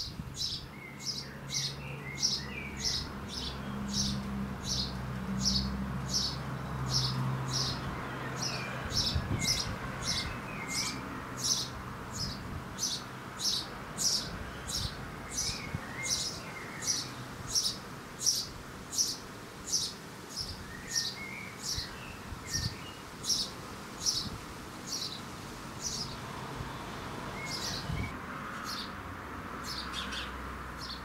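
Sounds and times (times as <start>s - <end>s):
sparrow chirping: 0.0s - 26.3s, 27.4s - 28.9s, 29.6s - 31.0s.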